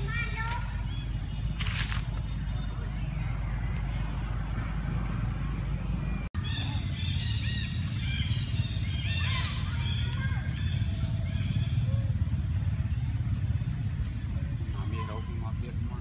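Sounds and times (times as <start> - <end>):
monkeys squeaking and chirping: 6.4 - 15.8.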